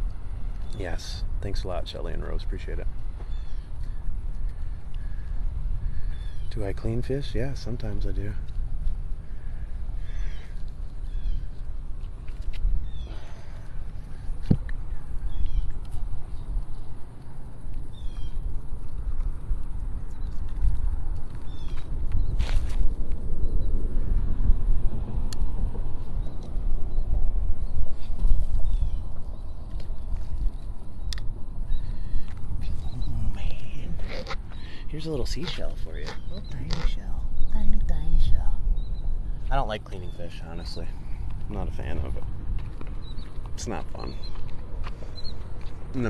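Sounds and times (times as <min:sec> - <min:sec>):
wind buffeting microphone: 0:00.0 - 0:46.0.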